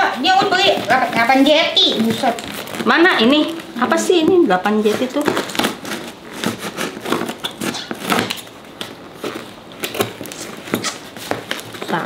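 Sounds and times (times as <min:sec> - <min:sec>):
scissors cutting tape and cardboard: 0:04.2 - 0:12.0.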